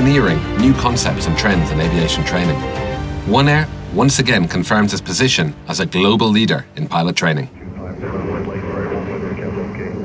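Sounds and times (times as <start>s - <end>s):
aircraft engine drone: 7.5s - 10.0s.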